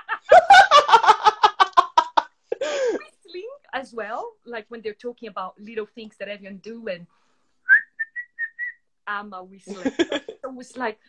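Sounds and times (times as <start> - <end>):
woman whistling short notes: 7.7 - 8.8.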